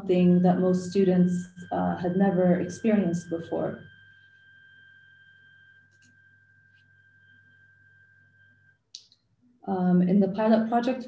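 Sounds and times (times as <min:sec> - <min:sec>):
faint low hum: 0:00.0 - 0:08.5
faint high-pitched tone: 0:00.0 - 0:08.8.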